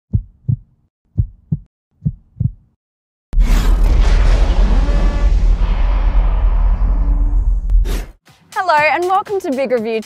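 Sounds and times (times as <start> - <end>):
heartbeat-like thumps: 0.1 - 2.8
loud rumbling boom: 3.4 - 8.0.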